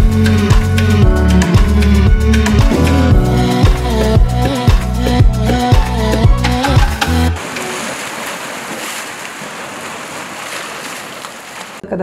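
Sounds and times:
sea waves washing on shore: 7.3s - 11.8s.

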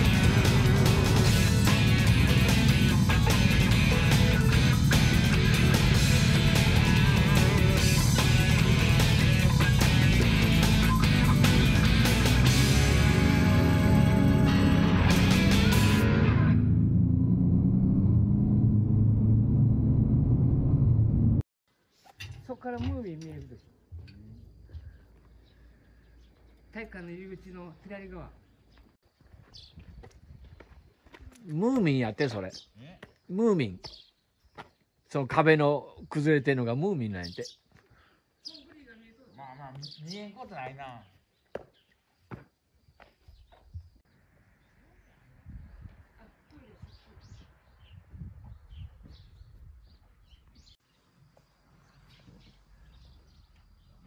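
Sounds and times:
rock music with electric guitar: 0.0s - 16.7s
motorcycles rumbling: 0.0s - 21.4s
faint footsteps: 28.4s - 32.0s.

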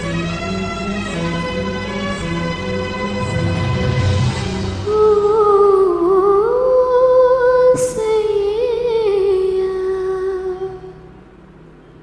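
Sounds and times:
woman singing unaccompanied: 4.9s - 11.0s.

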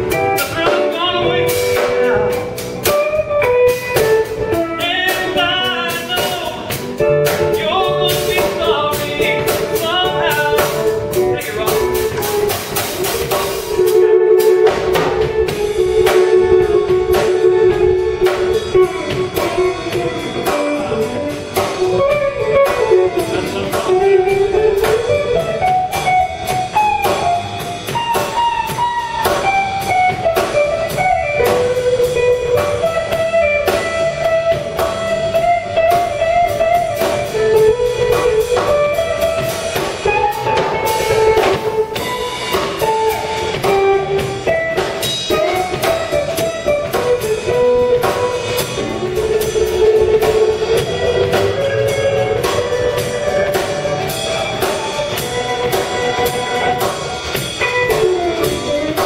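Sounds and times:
drum kit cymbals and drums: 0.0s - 59.0s
electric guitar melody: 0.0s - 59.0s
upright bass: 0.0s - 59.0s.

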